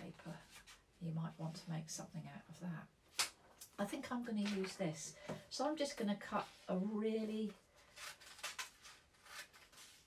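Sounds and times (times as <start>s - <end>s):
scissors snipping paper: 8.0s - 9.8s.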